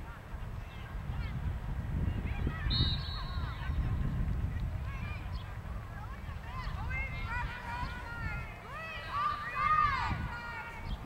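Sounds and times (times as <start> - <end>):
wind buffeting microphone: 0.0 - 11.0
referee's whistle blast: 2.7 - 3.6.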